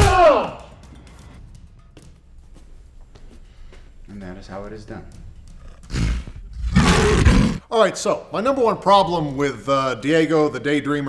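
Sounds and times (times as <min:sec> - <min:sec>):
animal growl: 0:05.5 - 0:07.7
loud animal roar: 0:05.8 - 0:07.6.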